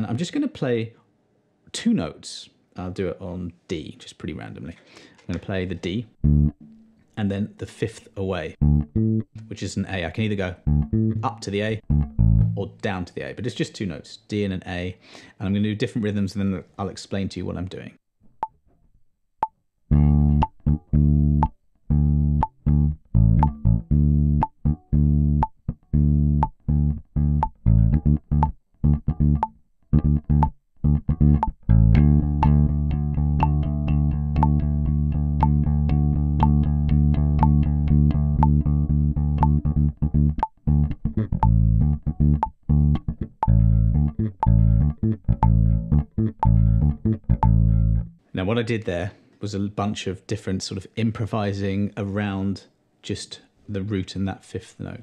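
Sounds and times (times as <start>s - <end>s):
electric bass guitar: 6.1s - 7.0s, 8.5s - 12.9s, 19.9s - 48.2s
metronome clicking: 20.3s - 20.8s, 21.4s - 21.6s, 22.4s - 22.6s, 23.4s - 23.7s, 24.4s - 24.8s, 25.4s - 25.6s, 26.4s - 26.7s, 27.3s - 32.7s, 33.4s - 34.7s, 35.4s - 38.7s, 39.4s - 47.7s.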